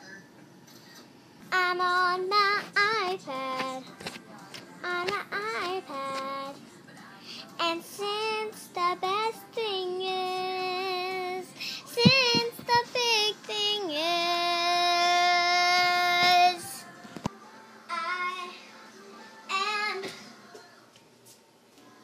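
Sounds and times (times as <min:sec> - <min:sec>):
girl singing: 0:01.5 - 0:06.6, 0:07.2 - 0:21.0.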